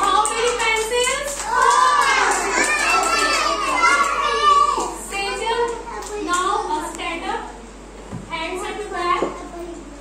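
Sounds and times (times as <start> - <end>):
young children calling out: 1.6 - 5.1.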